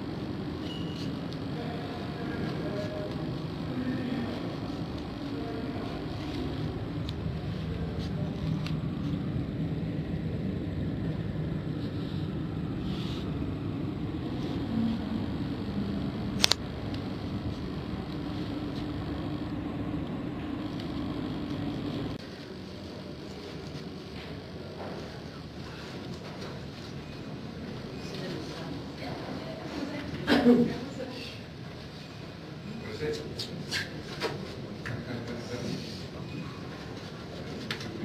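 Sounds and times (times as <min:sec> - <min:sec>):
low room hum: 0:00.0 - 0:38.0
sharp click: 0:16.4 - 0:16.6.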